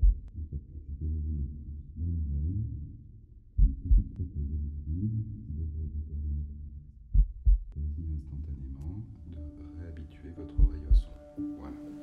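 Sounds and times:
muffled heartbeat thumps: 0.0s - 0.6s, 3.5s - 4.5s, 7.1s - 8.3s, 10.5s - 11.2s
dull low sounds: 0.0s - 12.0s.

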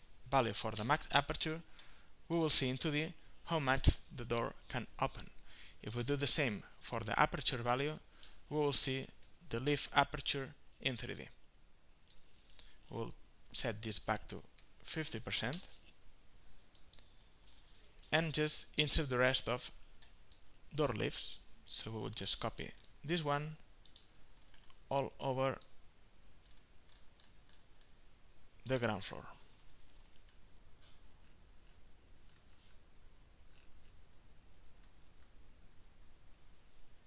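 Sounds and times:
faint computer mouse clicks: 30.2s - 36.2s.

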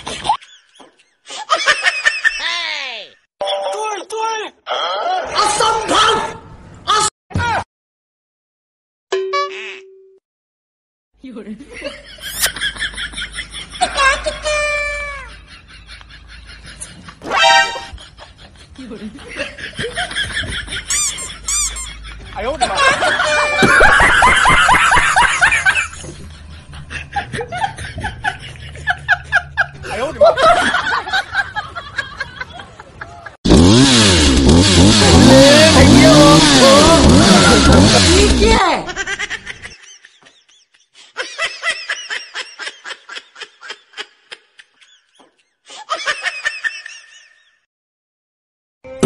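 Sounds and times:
high-pitched giggling: 12.2s - 12.7s, 20.7s - 22.1s
comic honk sound effect: 17.2s - 18.0s, 23.2s - 23.8s, 35.2s - 38.5s.

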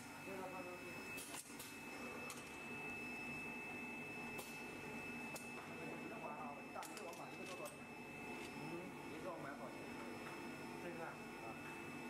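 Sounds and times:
machine whine: 0.0s - 12.0s.

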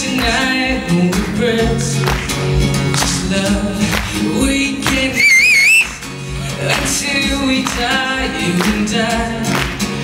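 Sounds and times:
acoustic guitar music with beat: 0.0s - 10.0s
wavering high whistle: 5.2s - 5.9s.

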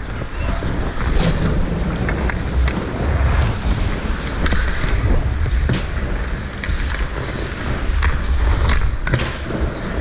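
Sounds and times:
skate blades scraping ice: 0.0s - 10.0s
wind rushing over microphone: 0.0s - 10.0s.

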